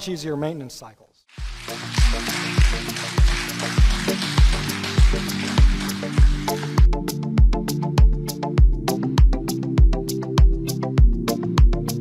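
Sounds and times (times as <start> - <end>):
steady kick drum: 1.4 - 11.8
electronic music: 1.4 - 12.0.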